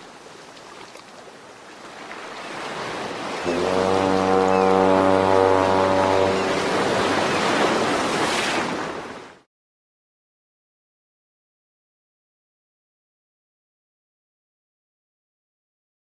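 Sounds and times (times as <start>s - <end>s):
rushing surf-like noise: 3.4s - 9.2s
deep horn-like tone: 3.5s - 6.9s.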